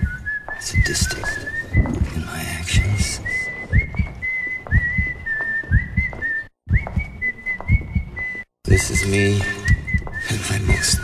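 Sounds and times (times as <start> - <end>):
whistled melody: 0.0 - 2.1, 2.8 - 11.0.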